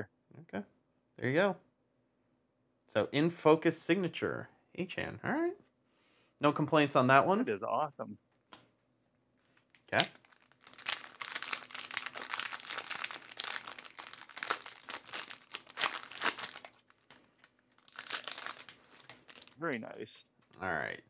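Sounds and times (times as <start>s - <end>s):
foil pack tearing and crinkling: 9.7s - 19.6s.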